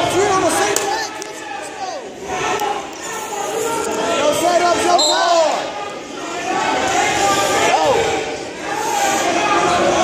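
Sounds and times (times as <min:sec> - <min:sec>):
spectators and coaches shouting: 0:00.0 - 0:10.0.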